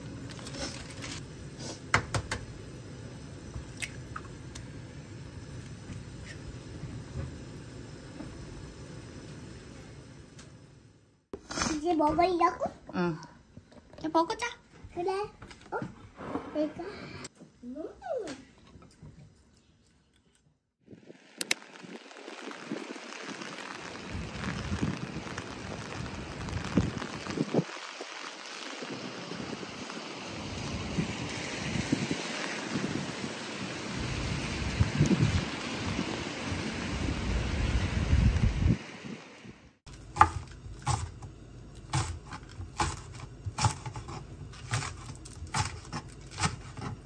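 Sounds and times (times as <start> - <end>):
heavy rain on pavement: 0.0 - 2.2, 21.0 - 39.5
wind rumbling on microphone: 20.8 - 39.7.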